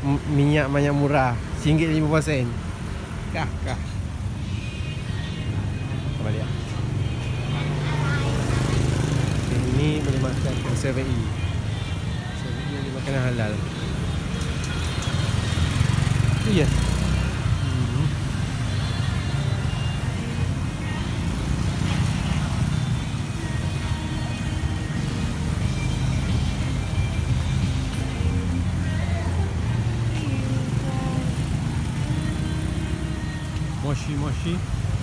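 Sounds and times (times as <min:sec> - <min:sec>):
cars passing: 0:00.0 - 0:35.0
motorcycles passing: 0:00.0 - 0:35.0.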